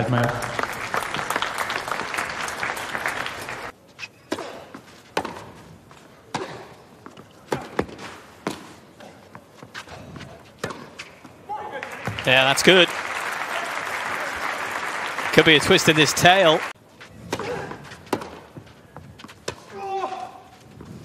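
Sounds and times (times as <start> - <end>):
crowd applause: 0.0 - 3.7, 11.8 - 16.8
racket striking tennis ball: 4.1 - 5.6, 6.3 - 9.2, 10.6 - 11.1, 17.2 - 18.6.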